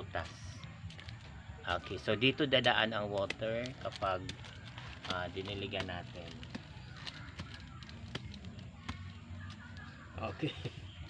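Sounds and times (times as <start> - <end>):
plastic bag crackling: 0.2 - 11.0.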